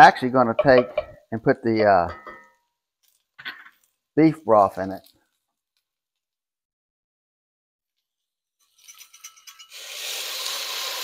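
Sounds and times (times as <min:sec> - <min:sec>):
glass clinking: 0:00.5 - 0:01.3, 0:02.0 - 0:02.6, 0:08.7 - 0:09.9
broth sizzling in a hot pan: 0:09.6 - 0:11.0.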